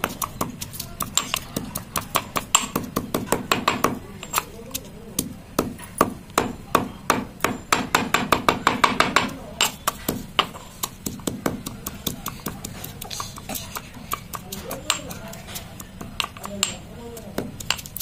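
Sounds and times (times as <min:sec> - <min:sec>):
pestle pounding in stone mortar: 0:00.0 - 0:18.0.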